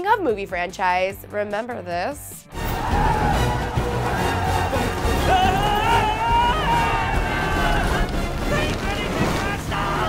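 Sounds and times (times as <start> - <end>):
film soundtrack music: 0.0 - 10.0
sea waves and surf: 7.1 - 10.0.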